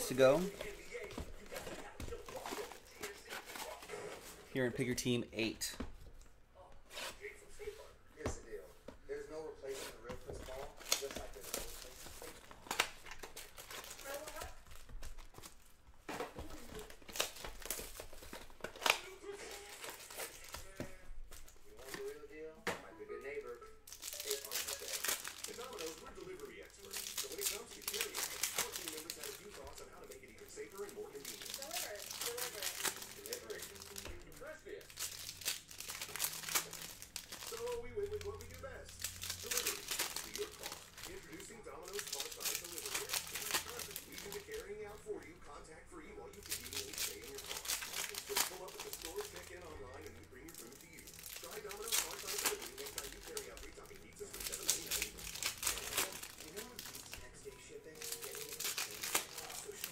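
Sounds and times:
plastic wrapping crinkling and tearing: 0:00.0 - 0:05.2, 0:09.7 - 0:22.2, 0:23.2 - 0:45.3, 0:46.0 - 0:59.9
foil packs tearing open: 0:10.4 - 0:15.6, 0:16.4 - 0:20.9, 0:23.9 - 0:44.7, 0:46.4 - 0:59.9.

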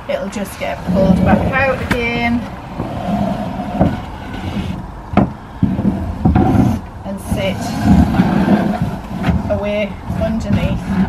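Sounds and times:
wood scraping on floor: 0:00.6 - 0:11.0.

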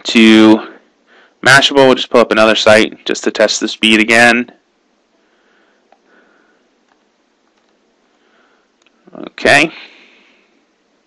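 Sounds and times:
soft breathing through nose: 0:01.0 - 0:01.4, 0:05.2 - 0:06.8, 0:08.1 - 0:09.0, 0:09.7 - 0:10.7.

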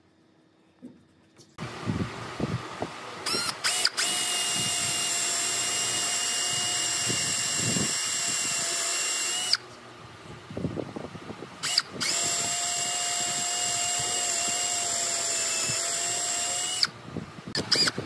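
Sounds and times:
drill boring into wood: 0:03.2 - 0:09.6, 0:11.6 - 0:18.0.

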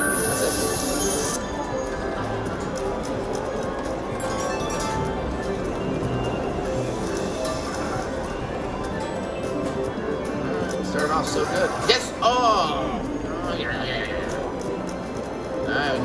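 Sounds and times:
casino room noise: 0:00.0 - 0:16.0
slot machine jingle: 0:00.0 - 0:16.0.

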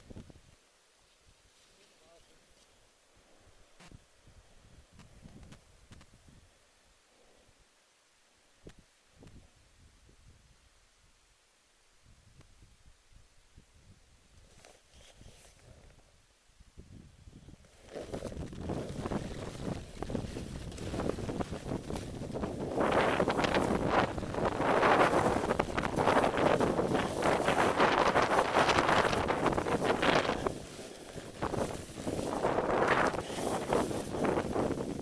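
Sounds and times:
wind buffeting microphone: 0:16.8 - 0:35.0
snowboard hissing through snow: 0:17.7 - 0:35.0.

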